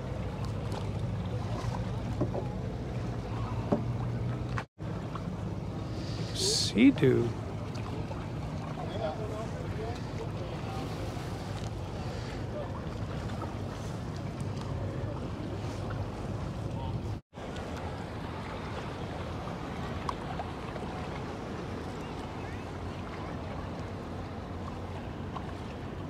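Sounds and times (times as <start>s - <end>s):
powerboat engines droning: 0.0s - 26.0s
water noise: 0.0s - 26.0s
wind: 0.0s - 26.0s.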